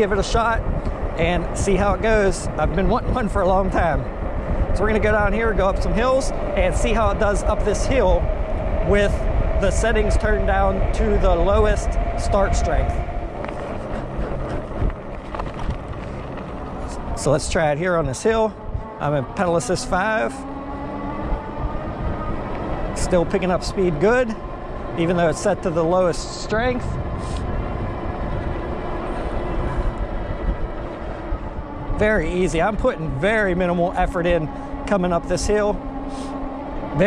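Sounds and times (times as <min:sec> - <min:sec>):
tyre and road noise: 0:00.0 - 0:37.0
wind on microphone: 0:00.0 - 0:37.0.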